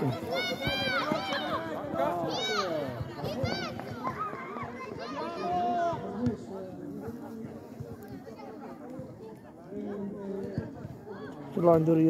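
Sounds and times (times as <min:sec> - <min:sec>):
children shouting: 0:00.0 - 0:06.0.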